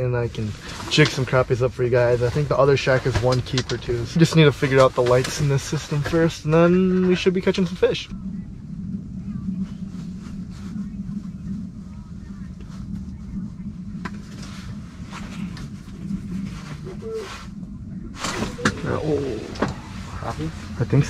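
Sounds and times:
muffled voices: 0.0 - 21.0
steady low hum: 0.0 - 21.0.

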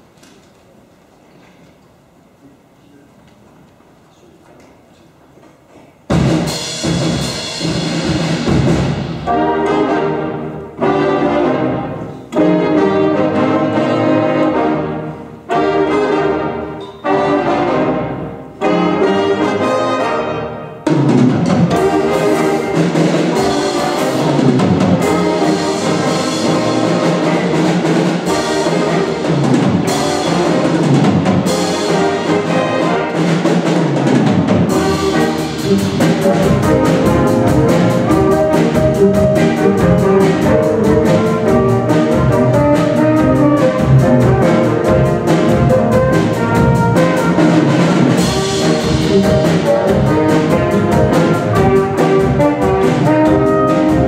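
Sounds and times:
jazz big band playing: 6.0 - 54.0.

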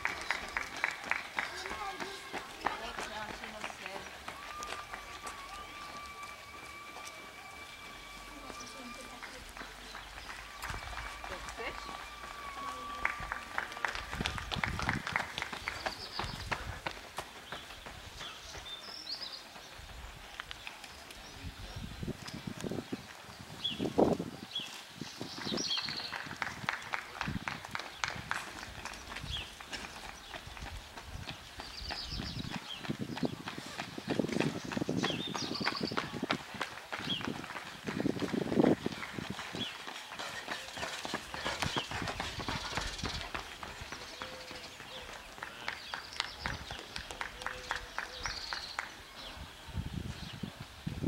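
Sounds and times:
running footsteps on asphalt: 0.0 - 51.0.

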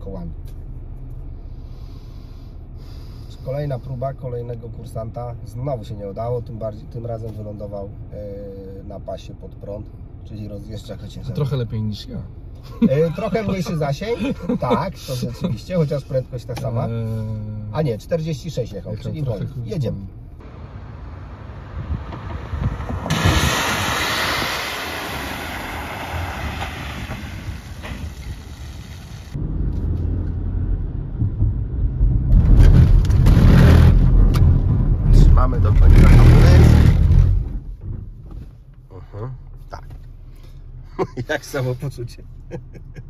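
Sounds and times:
low rumble of tyres and engine: 0.0 - 43.0
tyres hissing through water: 23.1 - 29.4.

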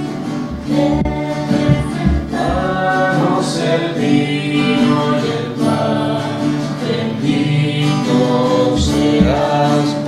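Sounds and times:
acoustic guitar: 0.0 - 10.0
voices singing a hymn: 0.0 - 10.0.

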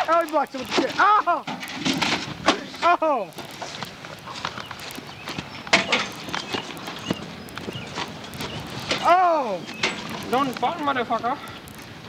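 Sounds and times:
knocks and clatter: 0.0 - 9.1.

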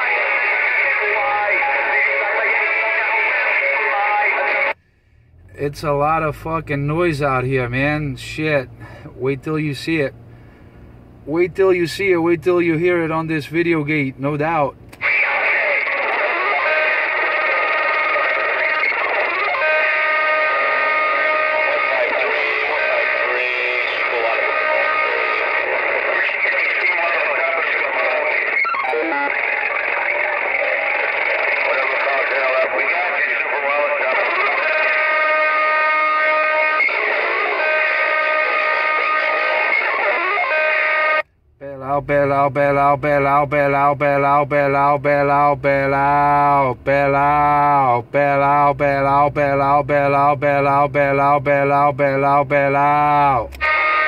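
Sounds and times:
distorted music over radio speaker: 0.0 - 4.8, 15.0 - 41.2, 53.5 - 54.0.

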